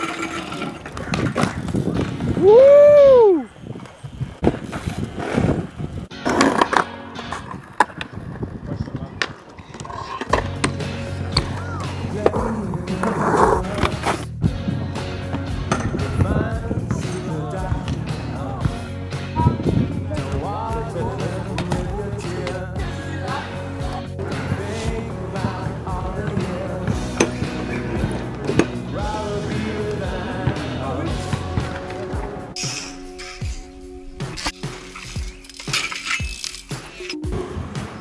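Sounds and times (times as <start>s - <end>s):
skateboard wheels rolling: 0.0s - 32.6s, 36.7s - 38.0s.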